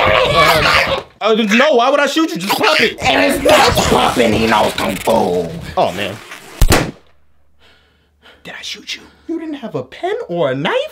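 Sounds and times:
loud gunshot: 6.6s - 7.3s.

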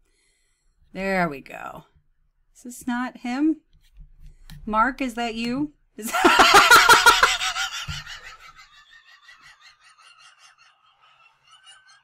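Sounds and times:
woman laughing hard: 6.1s - 12.0s.

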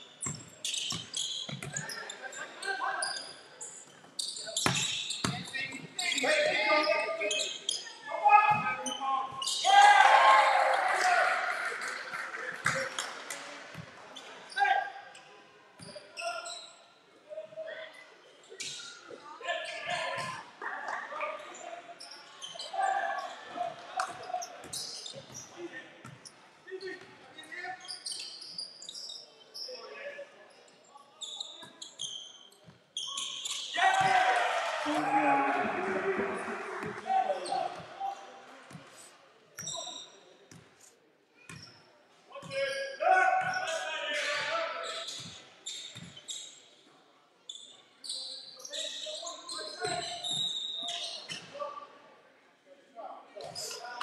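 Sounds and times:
players calling out: 33.7s - 37.9s.

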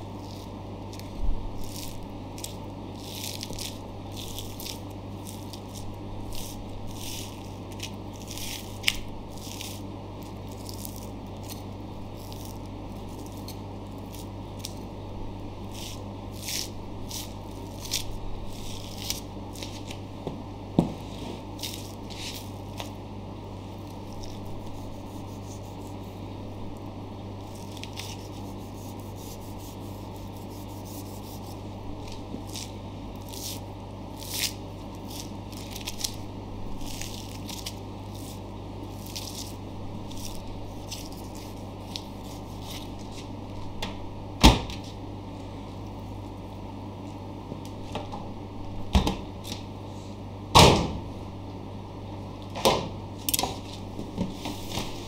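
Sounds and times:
steady low hum: 0.0s - 55.0s.

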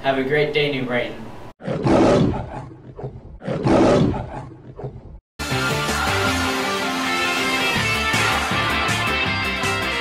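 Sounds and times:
lion roar: 1.6s - 5.2s.

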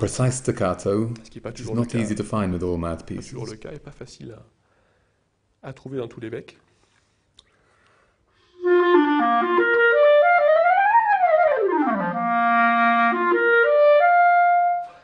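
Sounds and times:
clarinet phrase: 8.6s - 15.0s.

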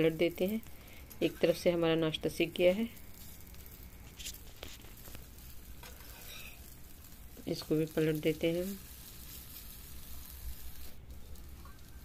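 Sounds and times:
pancakes sizzling in pan: 0.0s - 12.0s.

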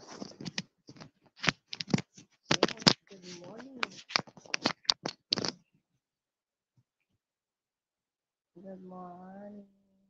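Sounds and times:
small objects clicking and rustling: 0.0s - 5.7s.

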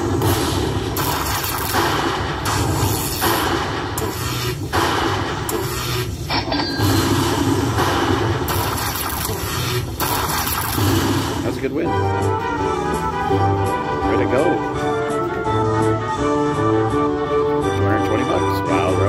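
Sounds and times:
electric zap sound effects: 0.1s - 11.5s
slot machine game music: 5.7s - 19.0s.

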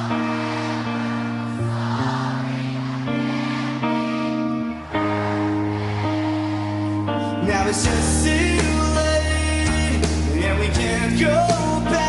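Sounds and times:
live rock band playing: 7.0s - 12.0s.

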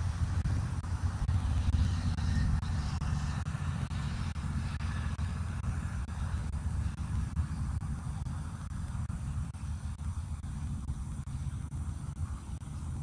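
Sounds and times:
vehicle passing: 0.0s - 13.0s.

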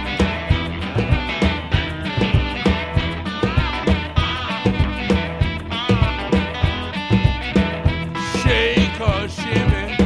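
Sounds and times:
bass guitar: 0.0s - 10.0s
drum kit steady beat: 0.0s - 10.0s
electric guitar: 0.0s - 10.0s.

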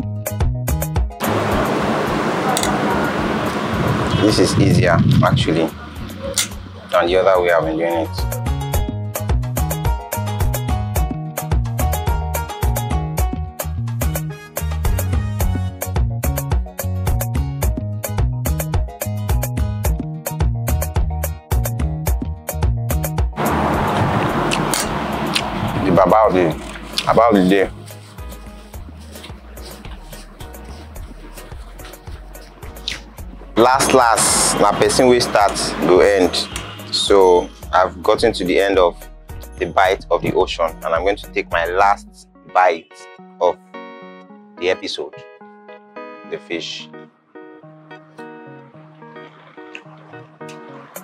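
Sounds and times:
background music with a beat: 0.0s - 1.2s, 8.2s - 23.4s, 27.0s - 34.6s, 49.6s - 51.0s
steady background noise: 1.2s - 4.7s
distant traffic hiss: 1.2s - 7.8s, 23.4s - 30.9s, 32.8s - 38.0s.

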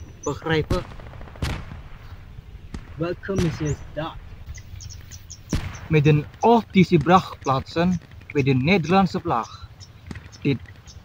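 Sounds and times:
sharp crack with echo: 0.5s - 8.5s.

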